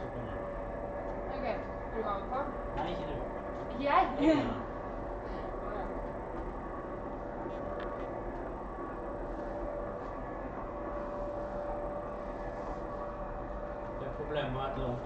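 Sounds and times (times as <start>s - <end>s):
low hum: 0.0s - 15.0s.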